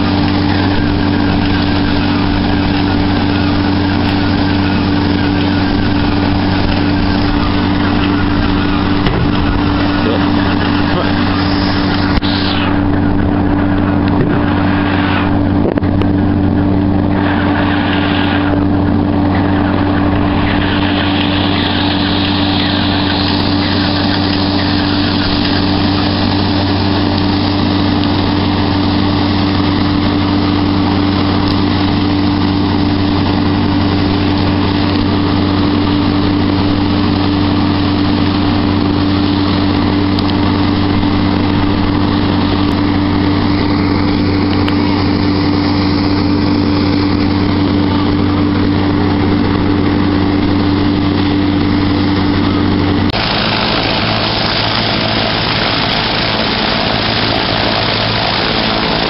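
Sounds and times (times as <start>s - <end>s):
radial aircraft engine droning: 0.0s - 59.0s.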